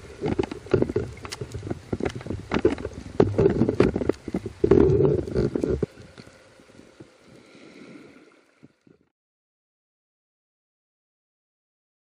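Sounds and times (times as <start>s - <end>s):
clicks and knocks underwater: 0.0s - 6.3s.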